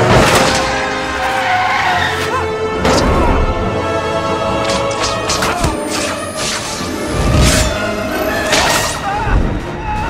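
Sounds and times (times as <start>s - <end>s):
orchestral score: 0.0s - 10.0s.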